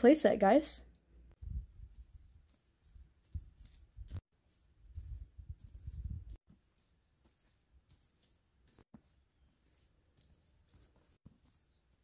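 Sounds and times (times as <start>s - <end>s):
dry leaves and twigs crackling: 1.5s - 12.0s.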